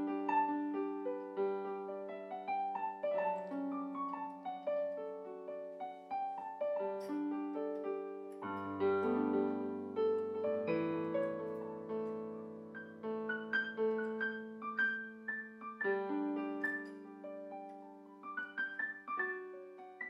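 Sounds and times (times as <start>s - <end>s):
keyboard piano melody with chords: 0.0s - 20.0s.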